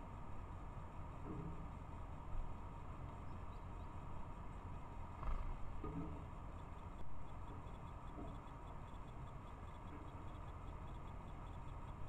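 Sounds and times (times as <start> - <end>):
low outdoor rumble and hiss: 0.0 - 12.0.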